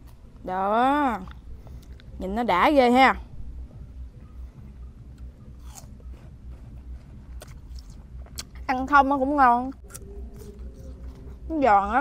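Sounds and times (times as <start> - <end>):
apple crunching: 5.2 - 8.6, 9.7 - 11.6.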